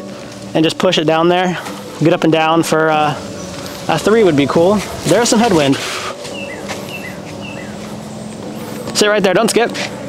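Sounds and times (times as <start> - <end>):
steady low hum: 0.0 - 9.0
bird calling high notes: 2.2 - 8.3.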